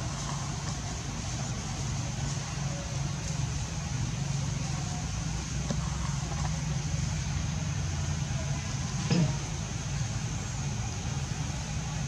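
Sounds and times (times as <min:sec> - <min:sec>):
background hiss: 0:00.0 - 0:12.0
engine humming: 0:00.0 - 0:12.0.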